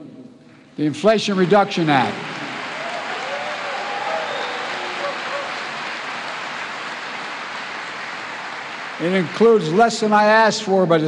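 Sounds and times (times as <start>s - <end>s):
audience applauding: 1.2s - 10.8s.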